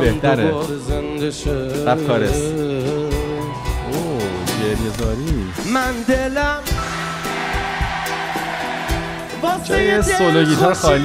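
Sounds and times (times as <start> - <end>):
live pop song: 0.0 - 11.0.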